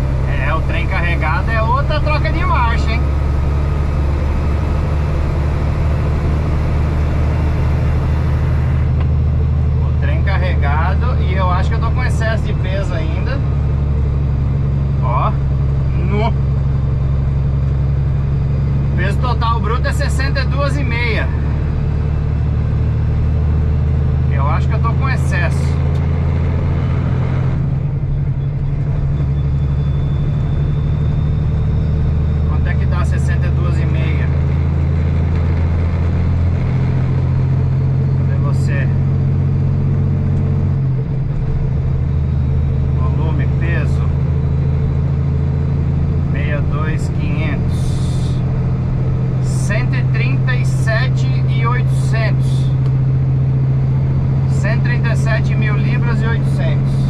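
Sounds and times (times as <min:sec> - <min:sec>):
diesel truck engine drone: 0:00.0 - 0:57.0.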